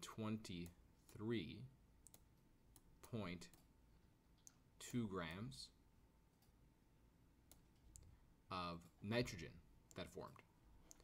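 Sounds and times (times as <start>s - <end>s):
person speaking: 0.0s - 3.8s, 4.4s - 5.8s, 8.0s - 11.0s.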